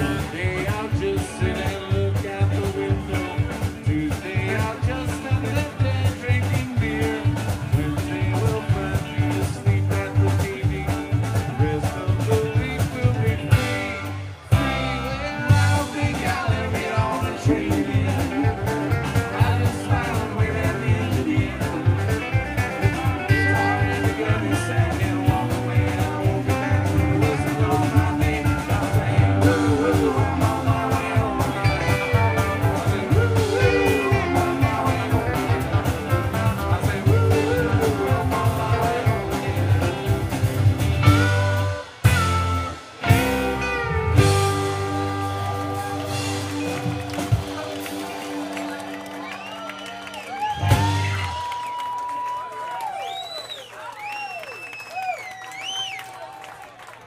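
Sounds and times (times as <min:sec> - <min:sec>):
live band playing upbeat song: 0:00.0 - 0:57.0.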